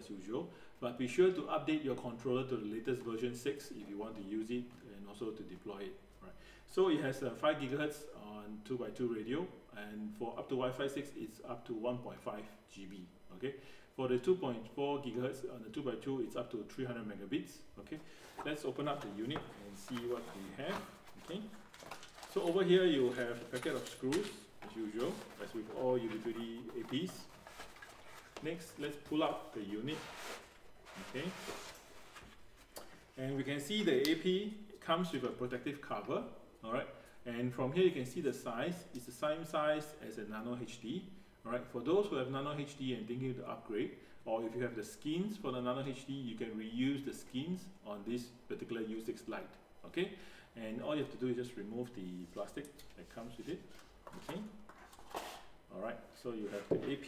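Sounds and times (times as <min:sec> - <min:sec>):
man speaking: 0:00.0 - 0:27.4, 0:28.3 - 0:30.3, 0:30.9 - 0:31.6, 0:33.1 - 0:54.7, 0:55.7 - 0:57.0
plastic cover crackling: 0:19.8 - 0:28.5
cardboard sliding against cardboard: 0:29.9 - 0:32.4.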